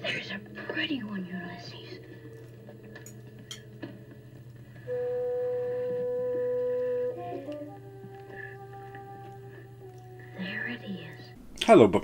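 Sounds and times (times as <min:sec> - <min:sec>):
low steady hum: 0:00.0 - 0:12.0
long musical note: 0:04.7 - 0:11.0.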